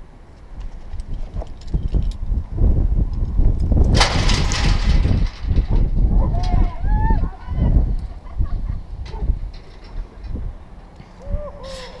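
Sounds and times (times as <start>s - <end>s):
wind rumbling on microphone: 0.0s - 12.0s
person hooting call: 11.2s - 12.0s.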